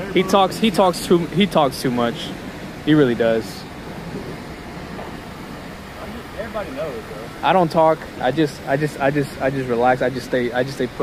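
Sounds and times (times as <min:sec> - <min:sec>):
even hiss: 0:00.0 - 0:11.0
low vehicle rumble: 0:00.0 - 0:11.0.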